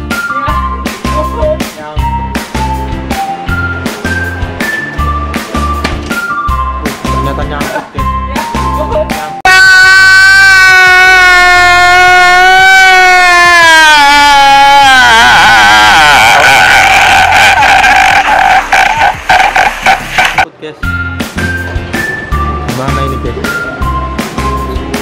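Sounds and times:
light music with bell notes: 0.0 - 9.4, 20.8 - 25.0
man wailing and sobbing: 9.5 - 17.4.

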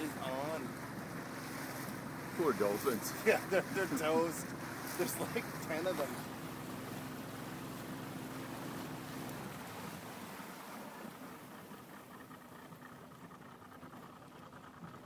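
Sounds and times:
boat motor humming: 0.0 - 15.0.

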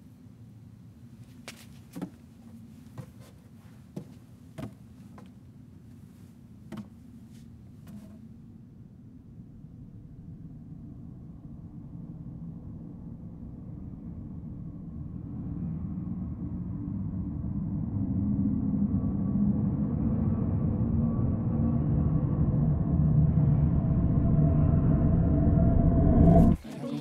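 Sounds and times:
low rumbling drone: 8.3 - 27.0.

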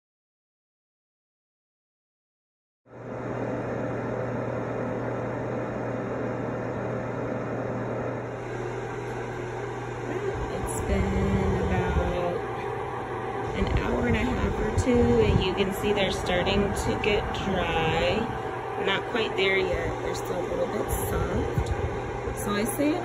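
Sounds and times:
food dehydrator humming: 2.9 - 23.0.

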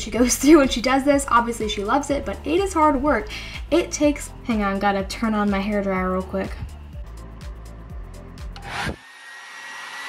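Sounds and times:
background music: 0.0 - 9.0
hair dryer running: 8.5 - 10.0.

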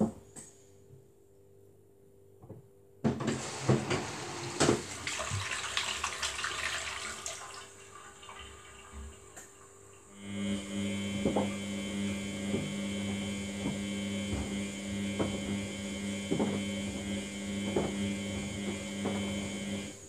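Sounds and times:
washing machine motor hum: 3.0 - 20.0.

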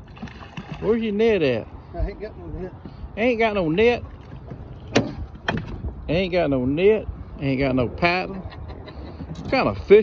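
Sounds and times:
fish thumping on boat deck: 4.3 - 5.9.

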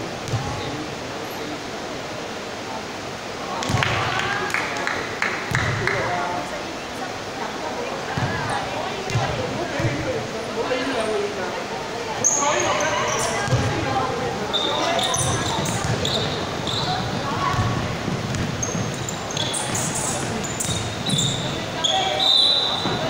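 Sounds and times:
basketball bouncing: 0.3 - 0.5, 9.1 - 10.0, 13.4 - 13.8, 15.0 - 21.6
sneakers squeaking on floor: 12.2 - 13.9, 14.5 - 23.0.

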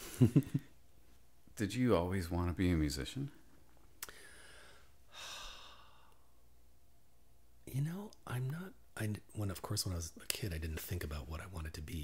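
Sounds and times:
person sighing: 4.0 - 6.2.

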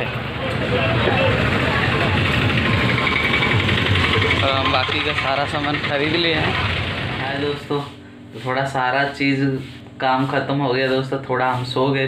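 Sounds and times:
voices of passers-by: 0.0 - 7.3
street and vehicle rumble: 0.0 - 7.6.

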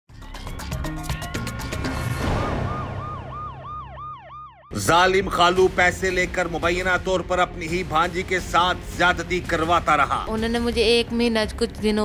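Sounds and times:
police siren yelping: 1.2 - 4.8.

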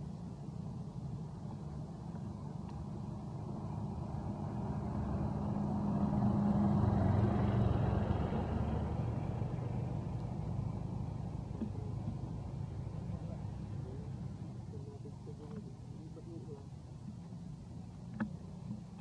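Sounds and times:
vehicle passing by: 2.3 - 16.6.

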